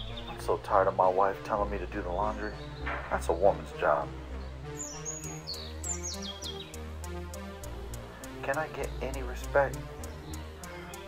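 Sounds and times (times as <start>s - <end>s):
low sustained background music: 0.0s - 11.0s
high falling chirps: 4.4s - 11.0s.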